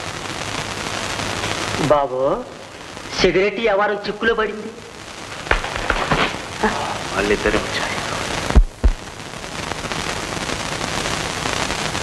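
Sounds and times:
film soundtrack hiss: 0.0s - 12.0s
sharp crackles: 0.0s - 12.0s.

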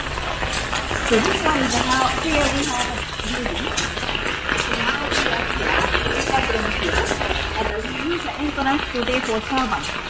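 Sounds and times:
footsteps crunching on gravel: 0.0s - 10.0s.

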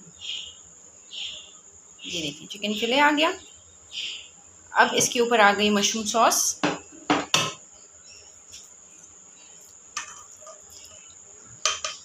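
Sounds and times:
utensil clinking against a pan: 10.0s - 10.6s, 11.6s - 12.0s.

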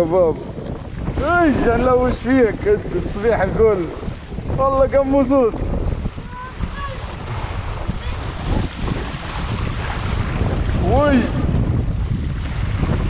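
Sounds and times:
water rushing and splashing: 0.0s - 13.0s
wind buffeting microphone: 0.0s - 13.0s.

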